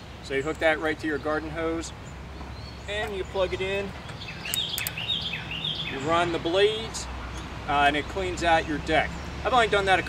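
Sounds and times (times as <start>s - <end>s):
bird chirping: 0.0s - 10.0s
hose fitting clicks: 4.1s - 5.0s.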